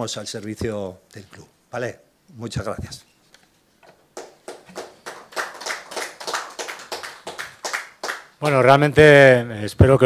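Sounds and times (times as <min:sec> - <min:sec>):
people clapping: 0:04.1 - 0:08.7.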